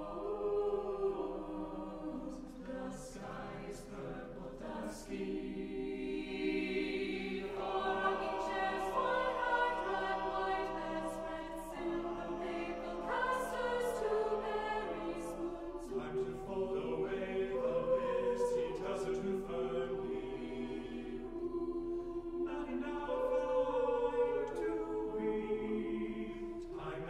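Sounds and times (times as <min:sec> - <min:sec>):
upper voices singing words: 0:00.0 - 0:27.0.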